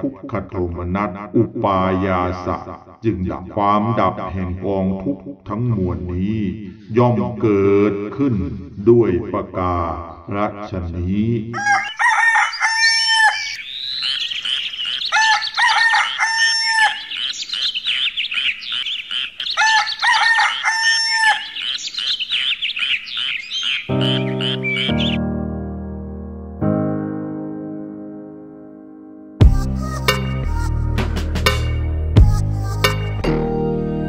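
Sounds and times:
birds chirping: 0:11.6 - 0:25.2
long pitched bird call: 0:11.6 - 0:25.3
piano chords: 0:23.9 - 0:34.0.

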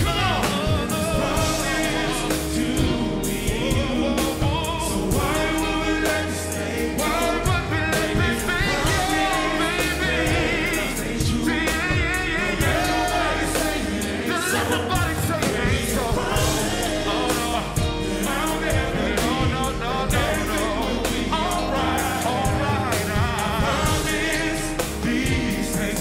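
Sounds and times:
live band playing: 0:00.0 - 0:26.0
male vocal group singing in harmony: 0:00.0 - 0:26.0.

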